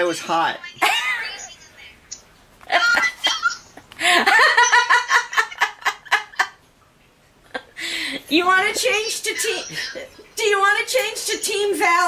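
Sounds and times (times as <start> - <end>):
woman laughing heartily: 2.7 - 6.6, 9.4 - 10.3.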